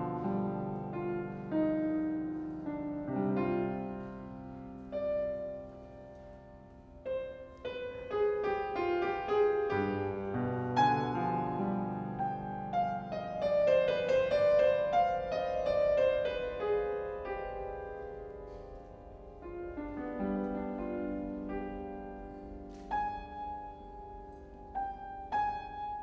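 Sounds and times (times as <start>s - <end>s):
grand piano chords: 0.0s - 26.0s.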